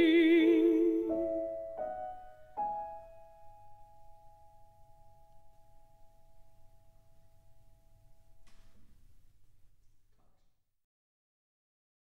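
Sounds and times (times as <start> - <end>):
piano notes ringing: 0.0 - 9.7.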